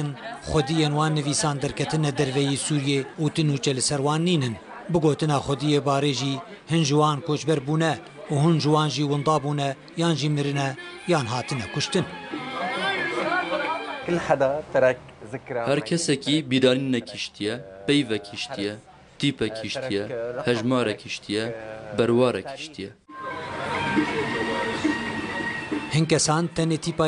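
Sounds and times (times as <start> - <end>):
faint voices: 0.0 - 14.4, 23.1 - 27.0
background noise: 0.0 - 27.0
people chattering: 0.0 - 27.0
music playing: 4.7 - 14.6, 23.1 - 27.0.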